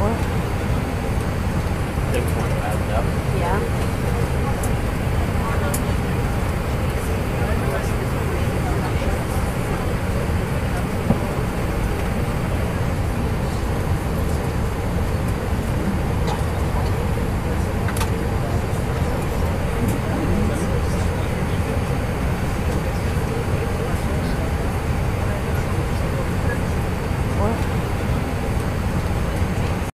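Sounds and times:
airliner cabin rumble: 0:00.0 - 0:29.9
passenger voices murmuring: 0:00.0 - 0:29.9.

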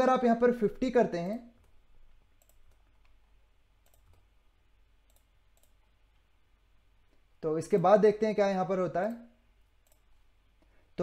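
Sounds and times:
keyboard and mouse clicks: 0:01.6 - 0:04.3, 0:05.0 - 0:06.3, 0:09.8 - 0:10.2.

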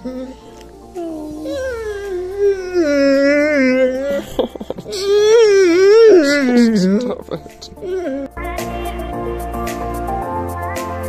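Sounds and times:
dog howling whines: 0:01.0 - 0:04.3.

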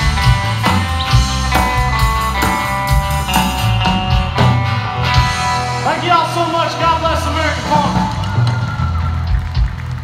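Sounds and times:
bass guitar: 0:00.0 - 0:10.0
drums: 0:00.0 - 0:10.0.

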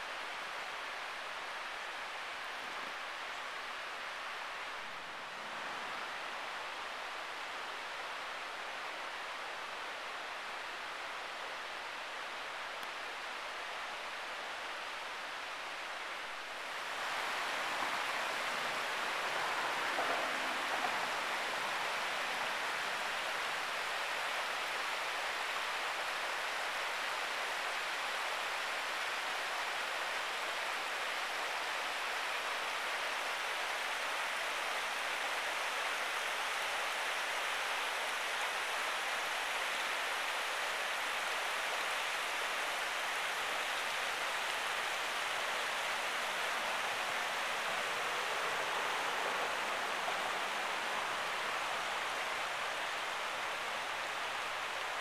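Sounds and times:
river water rushing over rocks: 0:00.0 - 0:55.0.

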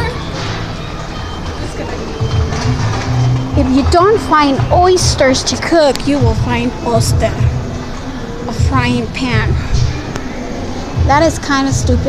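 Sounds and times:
supermarket background noise: 0:00.0 - 0:12.0.

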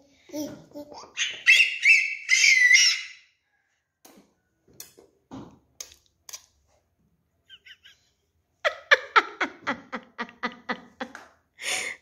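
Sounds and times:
toddler squealing laugh: 0:01.0 - 0:03.2.

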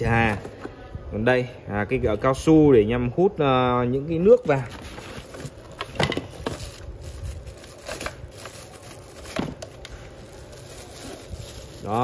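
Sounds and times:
cardboard box rustling: 0:04.4 - 0:12.0
plastic wrapping crinkling: 0:04.5 - 0:12.0.

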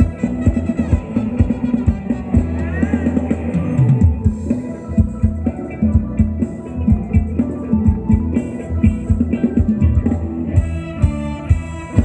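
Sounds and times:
live band dance music: 0:00.0 - 0:12.0.

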